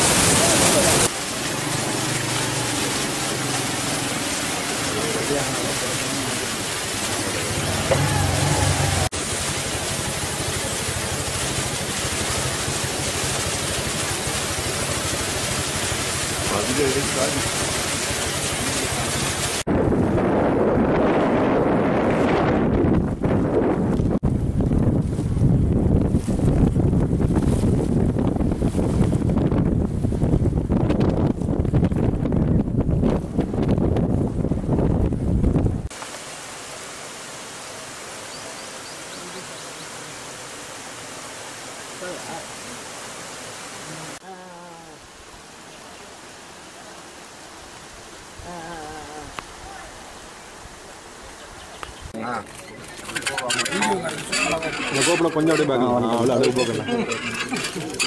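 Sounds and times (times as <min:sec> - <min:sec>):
outdoor ambience hiss: 0:00.0 - 0:19.7, 0:35.8 - 0:58.0
wind gusting across microphone: 0:18.6 - 0:36.0.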